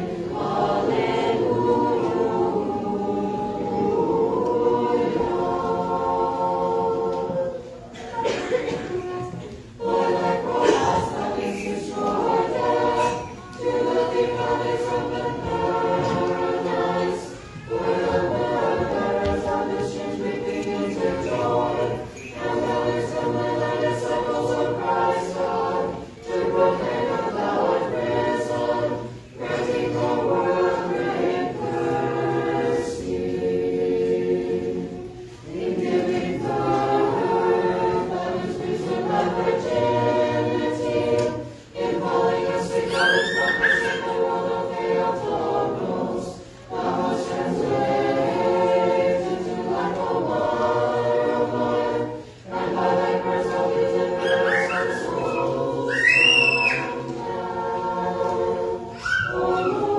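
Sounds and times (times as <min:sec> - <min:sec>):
choir chanting unaccompanied: 0:00.0 - 0:59.9.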